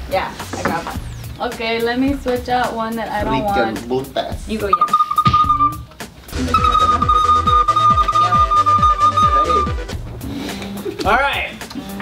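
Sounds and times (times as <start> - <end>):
electronic dance beat: 4.4 - 10.0
high recorder note: 4.7 - 9.9.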